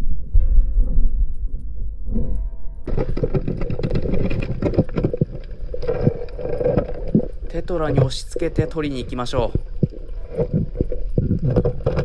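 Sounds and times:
underwater rumble of moving water: 0:00.0 - 0:12.0
knocks and clicks: 0:02.0 - 0:08.2.

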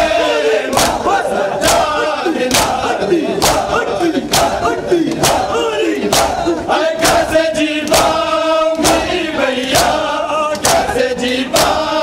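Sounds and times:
men chanting in mourning: 0:00.0 - 0:12.0
hands slapping bare chests: 0:00.7 - 0:10.9, 0:11.5 - 0:11.9.

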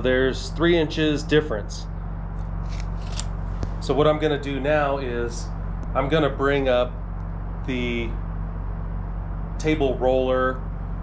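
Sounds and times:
steady low hum: 0:00.0 - 0:11.0
tape measure retracting: 0:02.6 - 0:03.4
tape measure click: 0:02.7 - 0:03.3.

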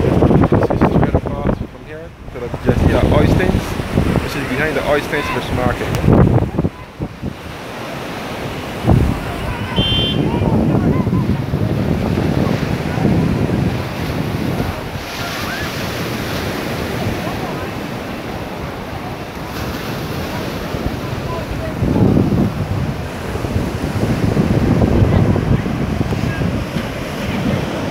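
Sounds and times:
surf washing on beach: 0:00.0 - 0:27.9
wind buffeting microphone: 0:00.0 - 0:27.9
brief high tone: 0:09.6 - 0:11.2.

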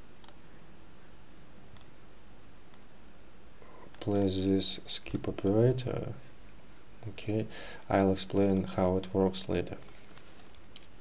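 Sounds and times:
low background hiss: 0:00.0 - 0:11.0
computer mouse clicks: 0:00.2 - 0:00.4, 0:01.8 - 0:02.0, 0:03.6 - 0:04.4, 0:08.2 - 0:08.8, 0:09.7 - 0:11.0.

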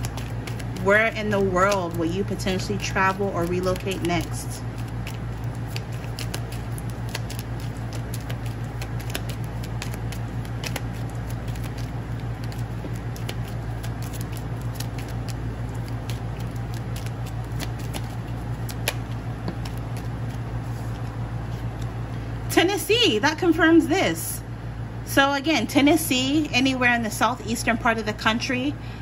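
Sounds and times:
cards being shuffled: 0:00.0 - 0:22.0
steady low hum: 0:00.0 - 0:29.0.

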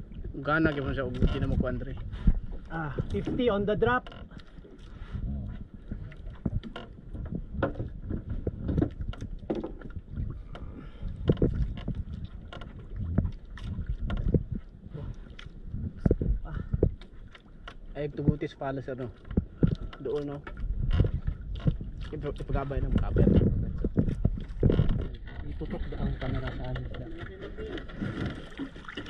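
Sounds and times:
water rumble: 0:00.0 - 0:29.0
wind: 0:00.0 - 0:29.0
knocks and clicks on boat: 0:00.2 - 0:29.0.

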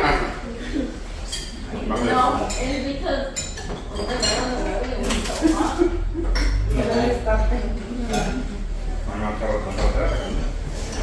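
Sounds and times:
plates and cutlery clinking: 0:01.0 - 0:11.0
people talking: 0:01.7 - 0:10.5.

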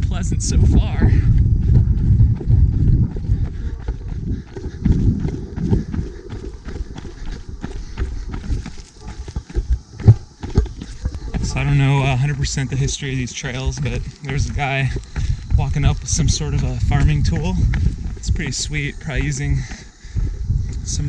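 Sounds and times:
wind rumbling on microphone: 0:00.0 - 0:21.0
footsteps on dirt and stone: 0:00.1 - 0:21.0.

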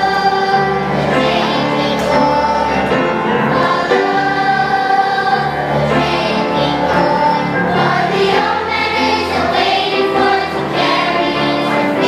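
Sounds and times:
children's chorus singing: 0:00.0 - 0:12.0.

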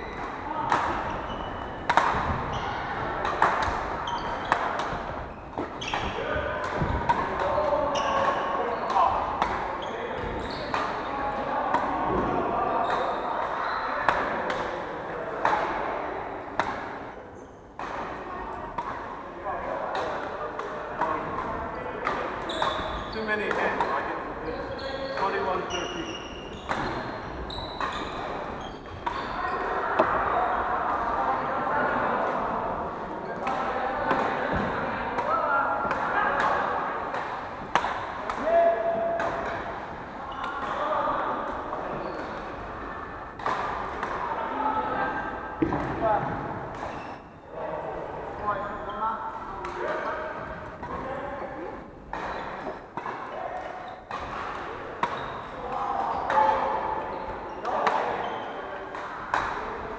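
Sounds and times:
chatter of voices: 0:00.0 - 0:59.9
rackets hitting shuttlecocks: 0:00.1 - 0:02.6, 0:03.2 - 0:11.0, 0:16.5 - 0:17.0, 0:26.5 - 0:27.1, 0:33.4 - 0:40.8, 0:43.4 - 0:44.3, 0:45.6 - 0:47.0, 0:52.0 - 0:59.9.

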